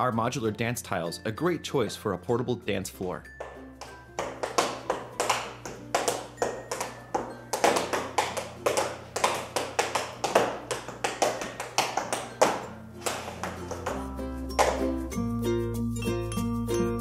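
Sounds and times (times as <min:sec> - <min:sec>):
tap shoes on dance tiles: 0:03.3 - 0:15.0.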